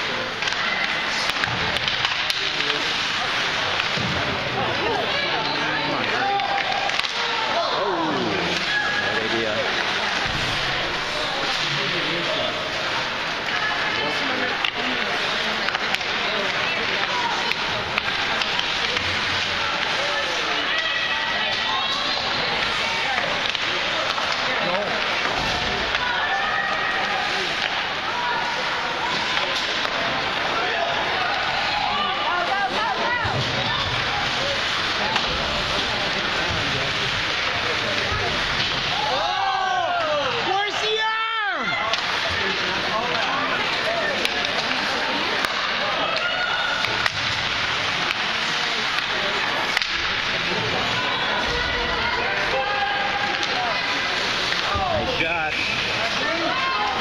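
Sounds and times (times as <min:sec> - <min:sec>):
spectator chatter: 0:00.0 - 0:57.0.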